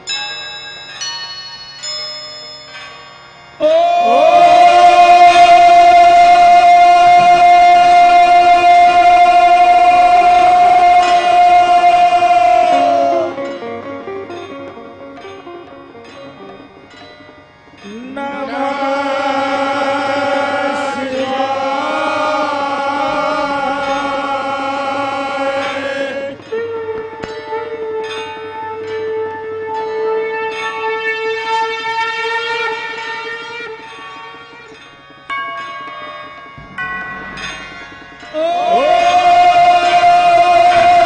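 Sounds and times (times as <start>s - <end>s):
ringing instrument notes: 0.0s - 41.0s
man singing held note: 3.6s - 13.4s, 38.3s - 41.0s.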